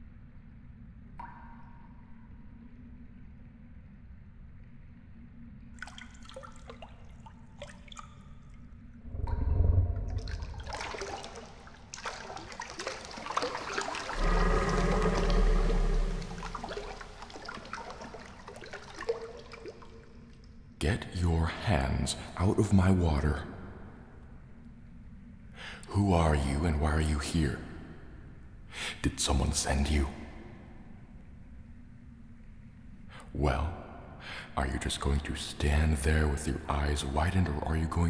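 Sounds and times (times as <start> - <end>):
water drips plinking into pool: 1.1 - 2.7, 5.7 - 20.6
faint low rumble: 8.8 - 11.9, 14.1 - 18.2.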